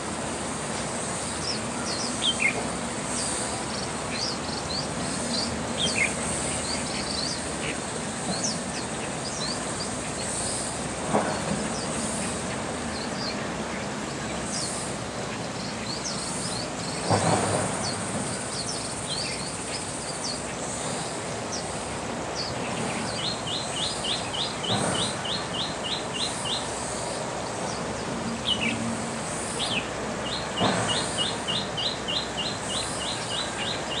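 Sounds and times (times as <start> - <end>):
songbirds chirping: 0.2 - 34.0.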